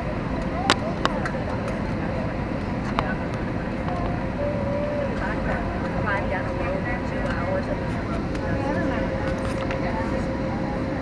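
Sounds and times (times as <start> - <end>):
airplane cabin engine noise: 0.0 - 11.0.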